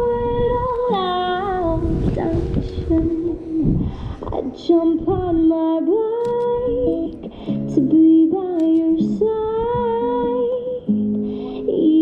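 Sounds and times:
acoustic guitar chords: 0:00.0 - 0:12.0
woman singing: 0:00.0 - 0:12.0.

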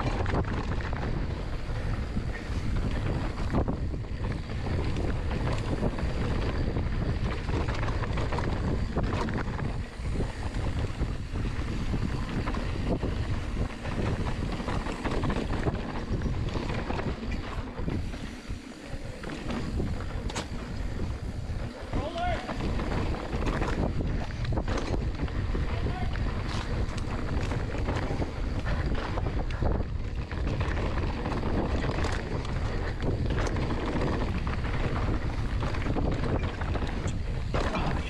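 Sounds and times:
bike clicks and rattles: 0:00.0 - 0:38.0
tyres rolling on dirt: 0:00.0 - 0:38.0
wind rushing on microphone: 0:00.0 - 0:38.0.

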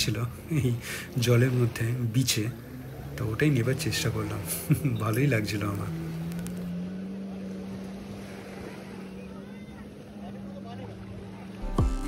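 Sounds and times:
small waves washing on sand: 0:00.0 - 0:11.6
watercraft engine droning: 0:00.0 - 0:12.0.

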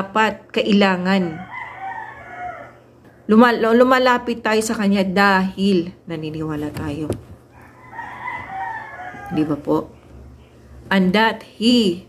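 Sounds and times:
rooster crowing: 0:01.2 - 0:02.9, 0:07.5 - 0:09.7.

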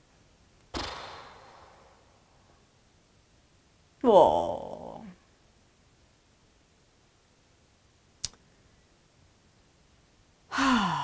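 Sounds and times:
woman sighing: 0:10.5 - 0:11.0.

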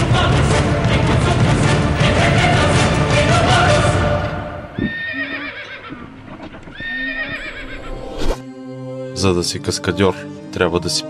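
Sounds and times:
loud music: 0:00.0 - 0:04.8
horse whinnying: 0:04.8 - 0:08.3.

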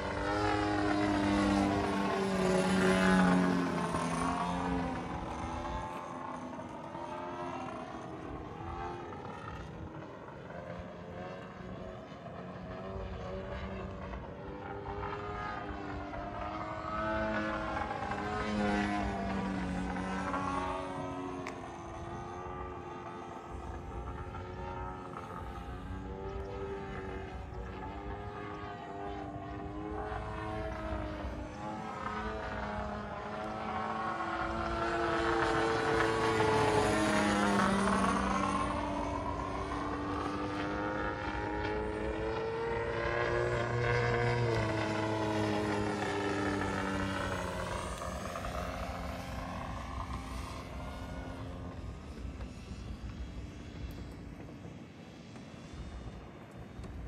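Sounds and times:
model airplane motor and propeller: 0:00.0 - 0:57.0.

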